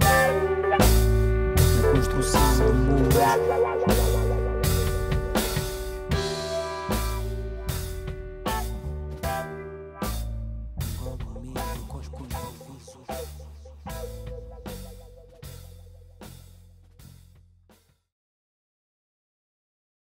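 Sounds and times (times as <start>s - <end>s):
band playing: 0.0s - 16.6s
drum and cymbal hits: 0.0s - 17.9s
held low bass note: 0.8s - 9.2s, 10.1s - 16.7s.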